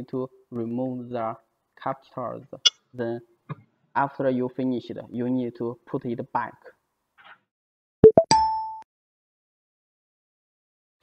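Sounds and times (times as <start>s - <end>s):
rising electronic plops: 8.0s - 8.5s.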